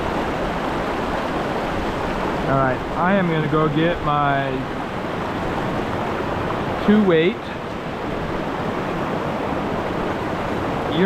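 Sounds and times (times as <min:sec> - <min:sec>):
stream rushing over boulders: 0:00.0 - 0:11.0
man speaking: 0:02.5 - 0:04.6, 0:06.8 - 0:07.6.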